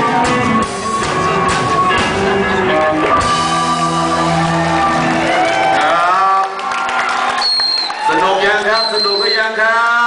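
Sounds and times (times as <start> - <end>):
rock band chord ringing out: 0.0 - 5.4
audience cheering: 2.6 - 9.4.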